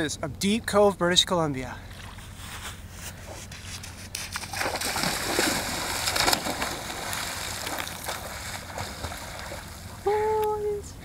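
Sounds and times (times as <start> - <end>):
swimming strokes splashing: 1.9 - 10.0
water splashing: 1.9 - 10.4.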